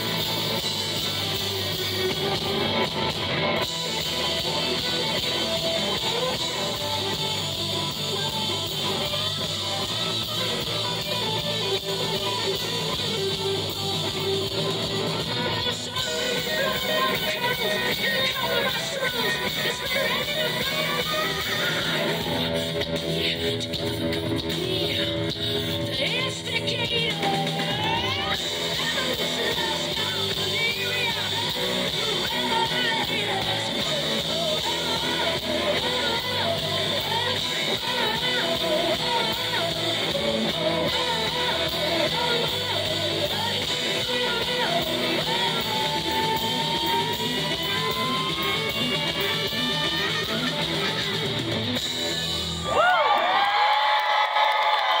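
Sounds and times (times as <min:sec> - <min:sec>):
bass and drums: 0:00.0 - 0:55.0
electric guitars: 0:00.0 - 0:55.0
live rock band: 0:00.0 - 0:55.0
crowd cheering and whooping: 0:45.0 - 0:55.0.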